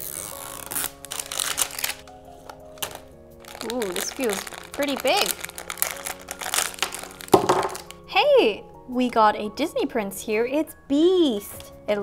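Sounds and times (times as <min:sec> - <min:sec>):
plastic and foil packaging crinkling: 0:00.0 - 0:08.0.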